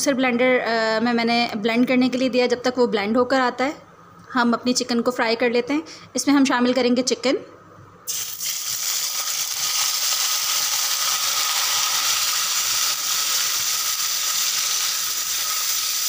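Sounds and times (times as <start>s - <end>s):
chicken sizzling in hot oil: 8.1s - 16.0s.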